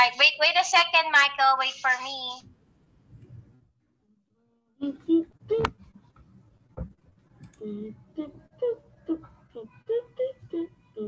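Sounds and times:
person vocalizing short syllables: 4.8 - 5.8, 7.6 - 11.0.

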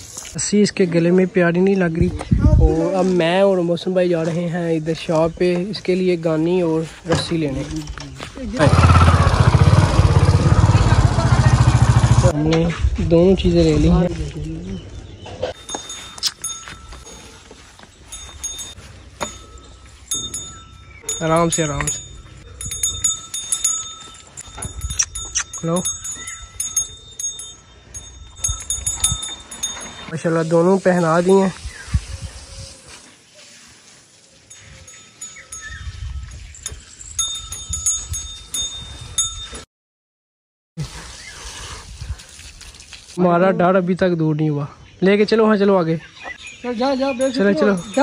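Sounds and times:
low rumbling: 8.5 - 14.9
small metal bells jingling: 15.6 - 31.6, 34.3 - 39.6, 46.4 - 48.0.

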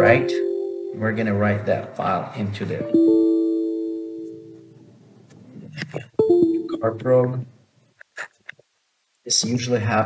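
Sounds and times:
computer error chime: 6.2 - 7.0.

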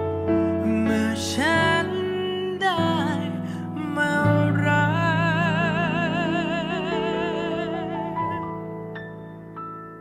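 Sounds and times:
slow piano ballad: 0.0 - 10.0
man singing: 0.2 - 8.7.

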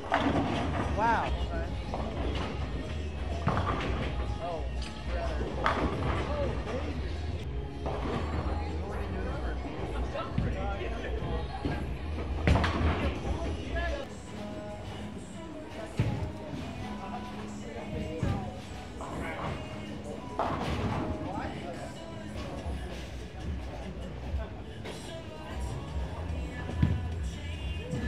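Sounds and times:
background music: 0.0 - 28.0
voices: 8.2 - 28.0.

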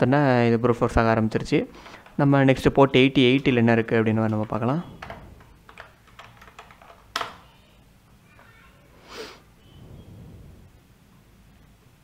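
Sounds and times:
keyboard typing: 3.3 - 7.5.

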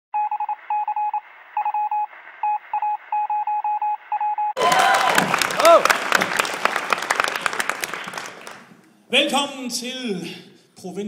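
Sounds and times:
electronic beep pulses: 0.2 - 4.6.

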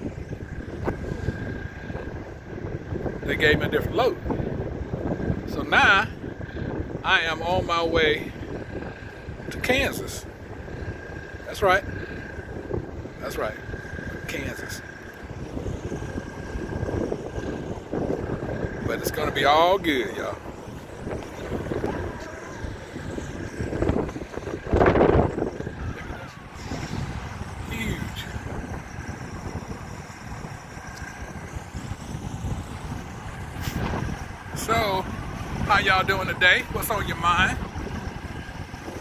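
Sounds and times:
distant diesel engines running: 0.0 - 39.0
faint high hum: 0.0 - 39.0
wind buffeting microphone: 0.0 - 39.0.

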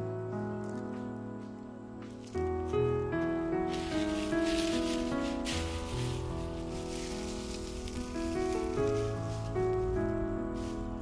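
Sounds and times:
soft background music: 0.0 - 11.0
dry leaves crackling: 3.6 - 11.0.

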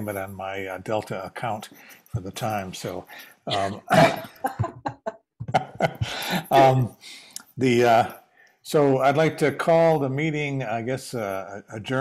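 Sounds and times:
man chuckling: 3.5 - 6.9.

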